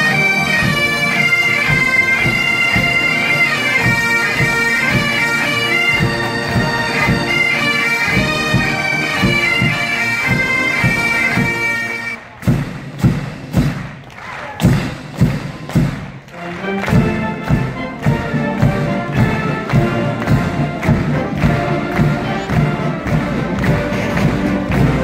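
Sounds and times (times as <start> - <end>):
bagpipes playing a tune: 0.0 - 12.2, 16.3 - 25.0
steady drum beat: 0.0 - 25.0.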